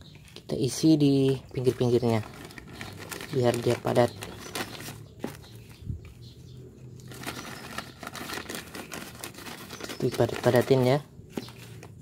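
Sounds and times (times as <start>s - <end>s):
plastic crinkling: 1.2s - 5.8s, 6.9s - 12.0s.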